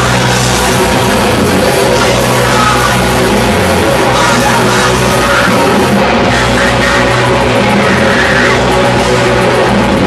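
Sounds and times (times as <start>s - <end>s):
loud distorted band music: 0.0s - 10.0s.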